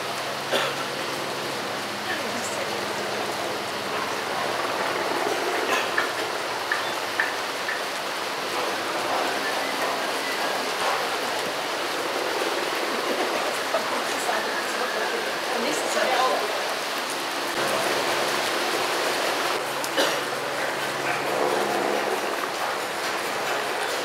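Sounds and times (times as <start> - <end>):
heavy rain: 0.0 - 24.0.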